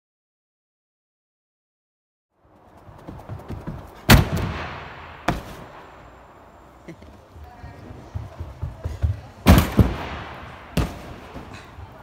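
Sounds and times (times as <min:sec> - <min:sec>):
running footsteps on runway: 0:02.6 - 0:04.2, 0:07.0 - 0:09.7
springboard bang: 0:04.1 - 0:06.0, 0:09.4 - 0:11.5.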